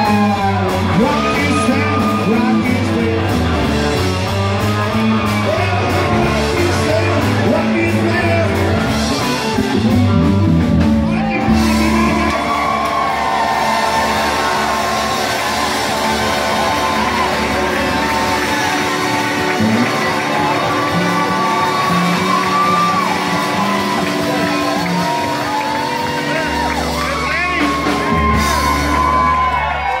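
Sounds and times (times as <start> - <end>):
person singing: 0.0 - 4.0, 4.6 - 8.9
crowd shouting and whooping: 0.0 - 30.0
electric guitar: 0.0 - 30.0
live rock band: 0.0 - 30.0
low bass notes: 0.0 - 30.0.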